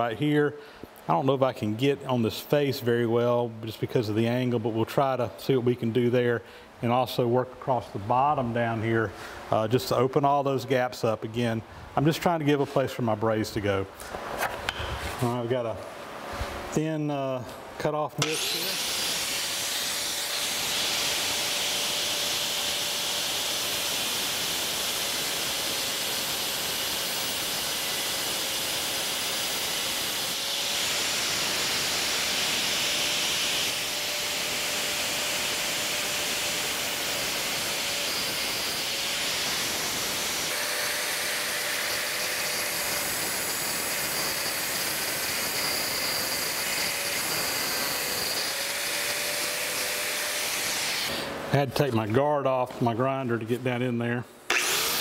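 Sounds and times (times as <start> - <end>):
angle grinder cutting metal: 18.2 - 51.4, 54.5 - 55.0.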